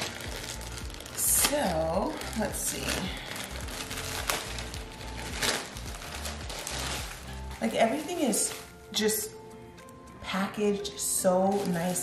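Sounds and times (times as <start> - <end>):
plastic bag crinkling: 0.0 - 9.0, 10.8 - 12.0
background music with low beat: 0.0 - 12.0.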